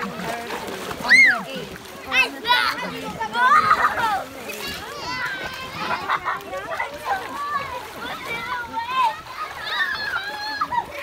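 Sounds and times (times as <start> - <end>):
children calling and chattering: 0.0 - 11.0
feet splashing in shallow water: 0.0 - 11.0.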